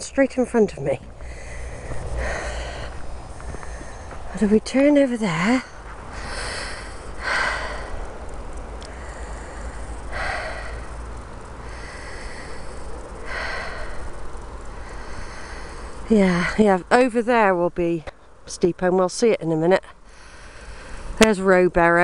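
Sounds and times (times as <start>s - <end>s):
steady low rumble: 0.0s - 22.0s
person breathing out heavily: 1.2s - 4.3s, 5.6s - 16.6s, 20.0s - 21.2s.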